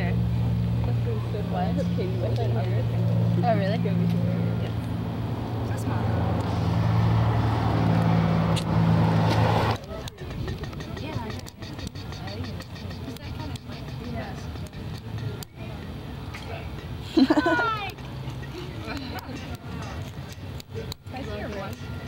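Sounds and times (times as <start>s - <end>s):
vehicle engine idling: 0.0s - 22.0s
faint voices: 9.5s - 22.0s.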